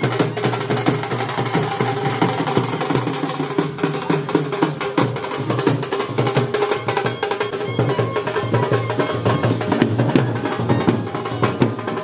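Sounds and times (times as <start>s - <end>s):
fast steady drumming: 0.0s - 12.0s
held melodic line: 6.0s - 12.0s.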